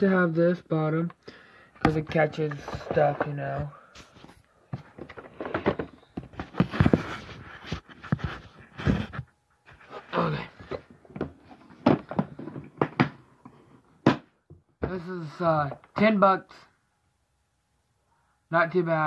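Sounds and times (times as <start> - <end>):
plastic box knocks and rattles: 11.1 - 13.2.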